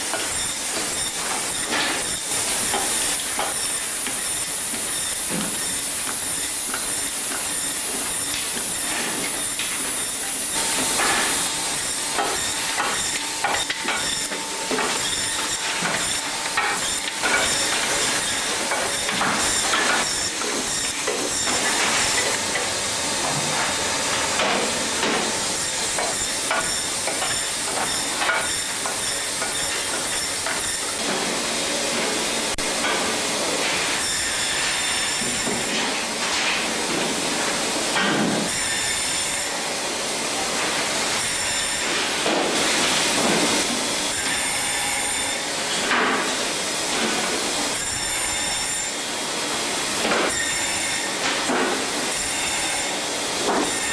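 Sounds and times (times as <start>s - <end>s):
band saw cutting fish: 0.0s - 31.2s, 33.6s - 39.7s, 40.4s - 53.9s.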